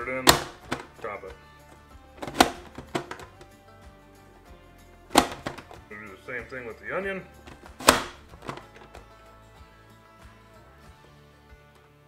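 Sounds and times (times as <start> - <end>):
vegetable dicer clacking shut: 0.2 - 1.1, 2.2 - 3.5, 5.1 - 5.8, 7.5 - 9.0.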